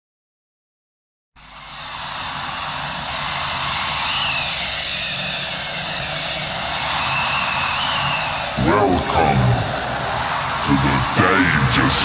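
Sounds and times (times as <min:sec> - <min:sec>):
faint wavering whistling tones: 0:01.6 - 0:08.6.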